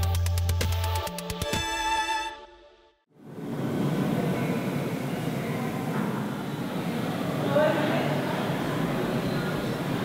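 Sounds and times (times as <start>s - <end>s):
low rumbling hall ambience: 3.1s - 10.0s.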